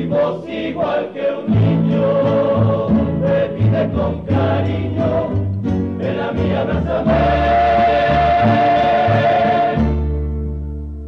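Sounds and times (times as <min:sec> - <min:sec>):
male chorus singing long note: 0:00.0 - 0:05.3, 0:06.0 - 0:10.0
bass line: 0:00.0 - 0:11.0
plucked strings: 0:01.5 - 0:11.0.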